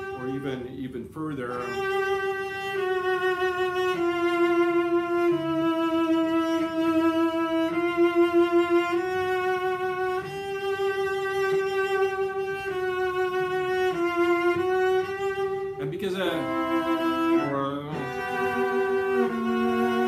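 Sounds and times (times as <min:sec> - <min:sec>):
cello bowed with vibrato: 0:00.0 - 0:20.0.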